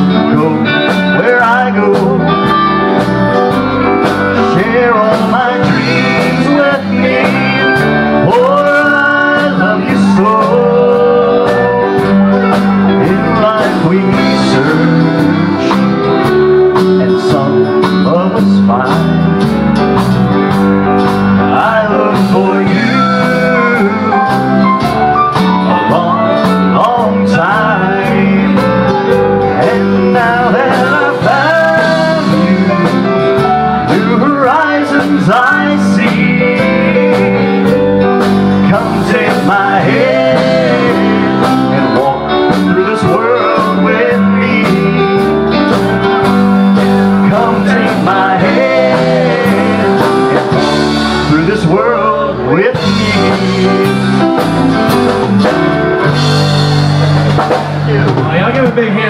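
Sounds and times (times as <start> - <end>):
man singing: 0.0 - 19.8, 21.0 - 24.8, 25.5 - 55.2
country band playing slow song: 0.0 - 59.0.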